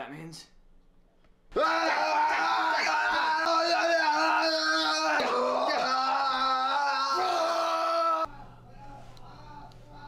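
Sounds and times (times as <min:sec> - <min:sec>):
man yelling: 0:01.5 - 0:08.3.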